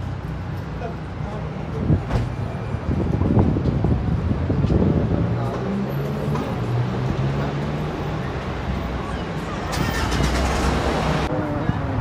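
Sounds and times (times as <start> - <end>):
road traffic: 0.0 - 12.0
people talking: 11.2 - 12.0.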